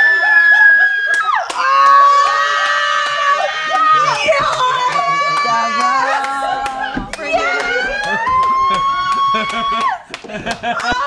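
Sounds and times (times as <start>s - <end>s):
people screaming in excitement: 0.0s - 11.0s.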